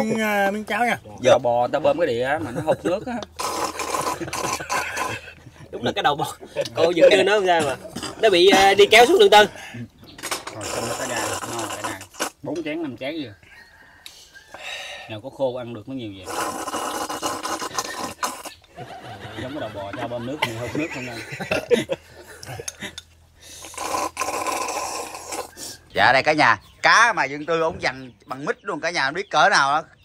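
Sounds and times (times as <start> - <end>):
man slurping porridge: 3.3 - 5.4, 10.2 - 12.4, 16.2 - 18.6, 23.4 - 25.8.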